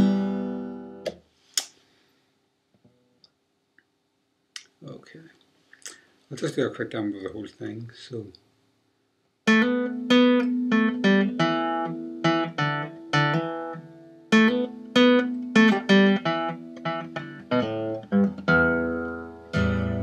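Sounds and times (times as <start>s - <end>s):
acoustic guitar picked notes: 0.0s - 1.1s, 9.5s - 20.0s.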